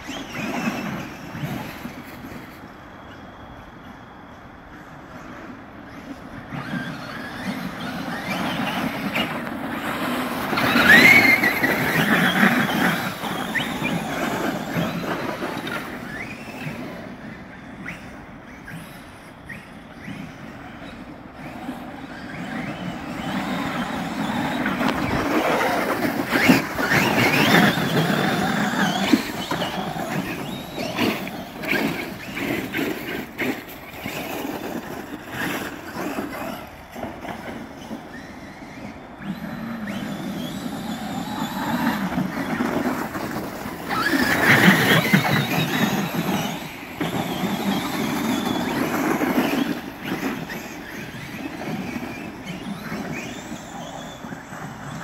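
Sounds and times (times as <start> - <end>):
tyres churning through snow: 0.0 - 3.3, 4.8 - 55.0
electric motors whining: 0.0 - 55.0.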